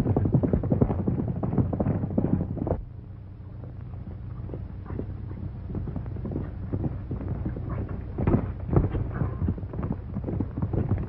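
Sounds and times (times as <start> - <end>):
horses galloping on dirt: 0.0 - 11.0
steady low hum: 0.0 - 11.0.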